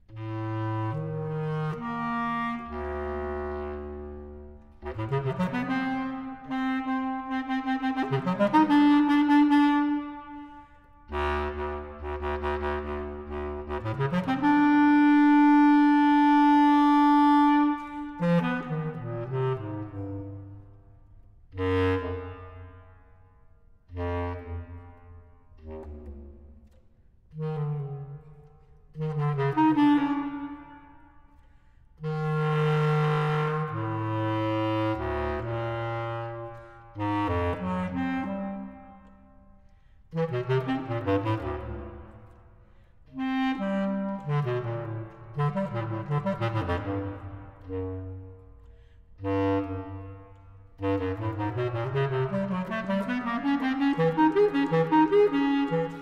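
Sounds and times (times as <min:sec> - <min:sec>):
bass clarinet playing: 0:00.0 - 0:56.0.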